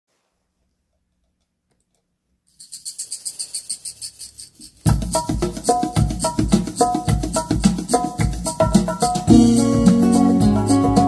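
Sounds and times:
high percussion pattern: 2.6s - 11.0s
band playing with deep bass: 4.9s - 11.0s.

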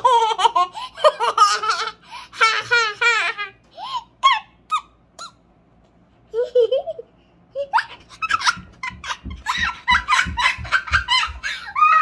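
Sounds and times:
girl laughing: 0.0s - 4.9s, 6.3s - 12.0s.

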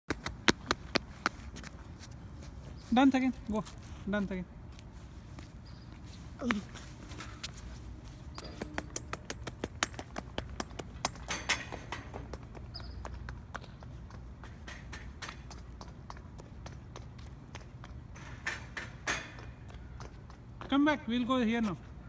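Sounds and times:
footsteps on stone paving: 0.1s - 18.2s, 19.4s - 20.9s.

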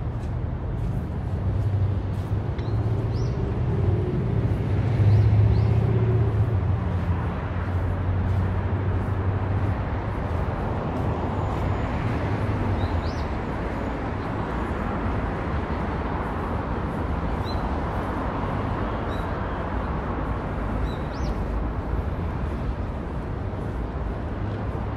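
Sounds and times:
traffic engine drone and tyre noise: 0.0s - 24.9s.

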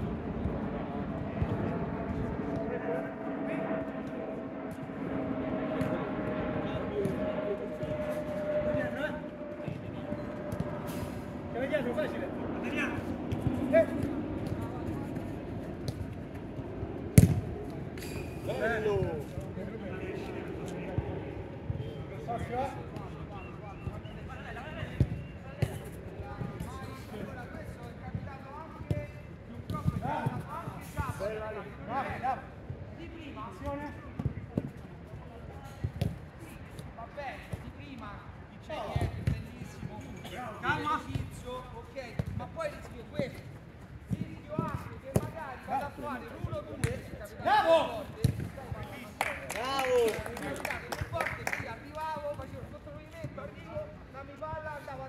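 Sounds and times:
football being kicked: 17.2s - 17.5s, 46.4s - 47.1s
players shouting and calling: 44.2s - 54.0s.

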